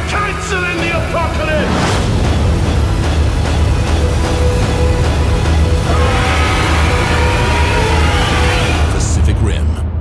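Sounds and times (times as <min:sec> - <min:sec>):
pulsing deep bass score: 0:00.7 - 0:10.0.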